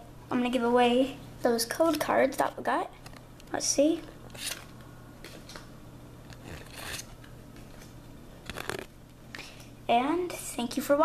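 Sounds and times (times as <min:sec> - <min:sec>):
paper cards rustling: 0:06.3 - 0:08.9.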